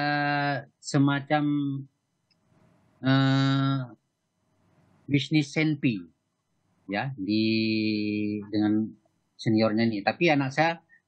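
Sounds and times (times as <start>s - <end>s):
man saying eeh: 0.0s - 1.8s, 3.0s - 3.9s, 5.1s - 6.0s, 6.9s - 8.9s, 9.5s - 10.8s.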